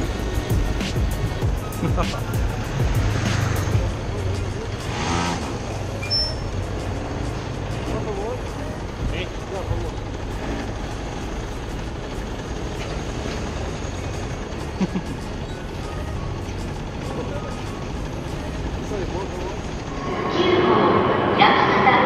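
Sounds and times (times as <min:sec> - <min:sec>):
city traffic: 0:00.0 - 0:22.0
go-kart engines idling: 0:00.0 - 0:22.0.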